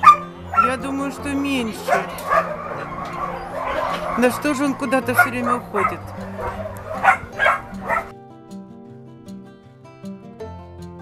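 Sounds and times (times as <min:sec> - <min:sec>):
dog barks: 0:00.0 - 0:08.1
puppies yipping and whimpering: 0:00.0 - 0:08.1.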